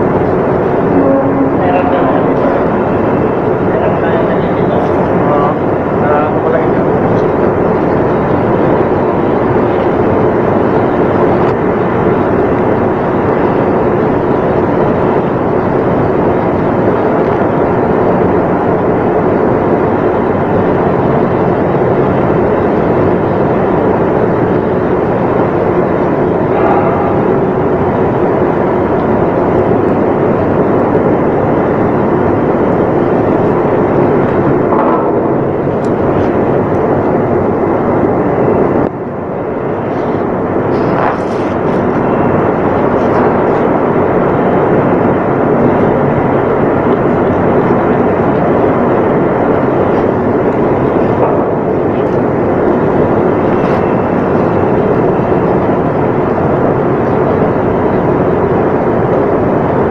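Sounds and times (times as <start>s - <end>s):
pump room machinery noise: 0.0s - 59.9s.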